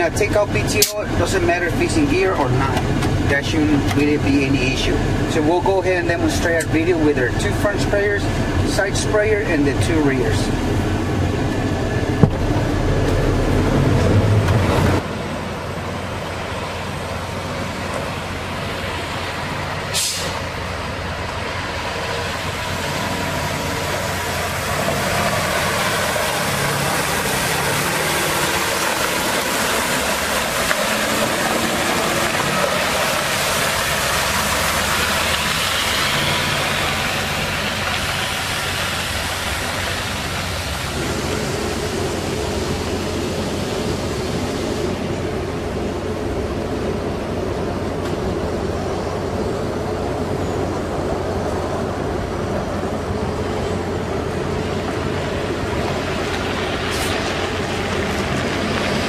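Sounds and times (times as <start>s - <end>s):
diesel engine running: 0.0s - 59.0s
water spraying onto gravel: 22.4s - 44.7s.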